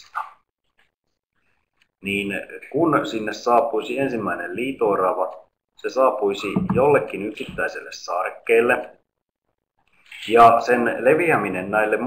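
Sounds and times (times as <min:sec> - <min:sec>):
person speaking: 0:02.0 - 0:09.1, 0:09.9 - 0:12.0.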